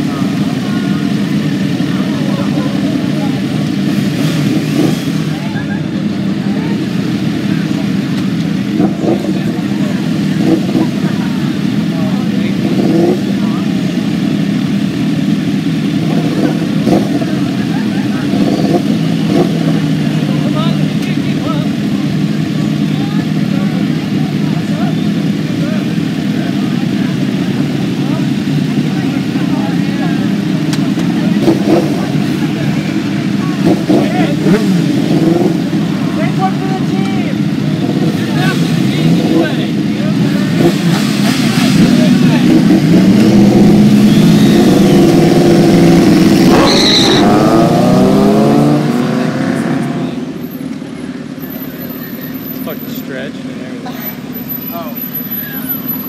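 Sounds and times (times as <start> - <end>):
motorcycles idling: 0.0 - 56.0
passing street traffic: 0.0 - 56.0.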